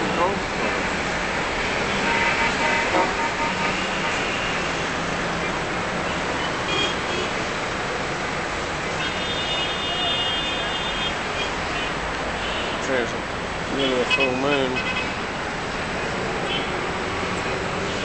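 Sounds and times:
road traffic noise: 0.0 - 18.0
car horns: 1.7 - 4.8, 6.1 - 7.4, 9.0 - 13.1, 13.8 - 15.2, 16.4 - 16.9.

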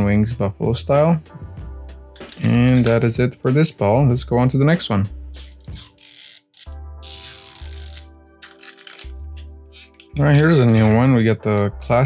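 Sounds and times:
background music with sustained tones: 0.0 - 12.0.

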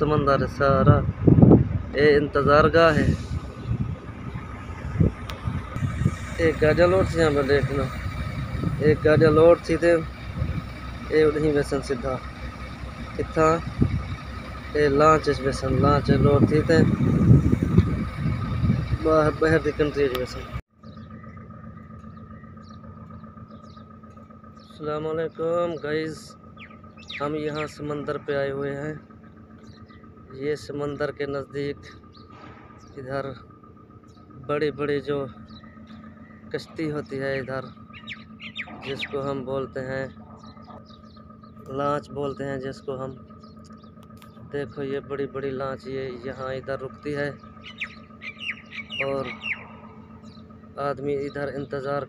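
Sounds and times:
constant hum: 0.0 - 52.0
distant traffic rumble: 0.0 - 52.0
faint bird chirps: 20.8 - 30.7, 31.6 - 52.0.

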